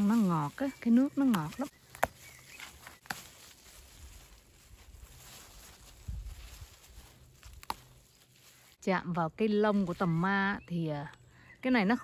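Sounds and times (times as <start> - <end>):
rustling of leaves: 0.0 - 10.8.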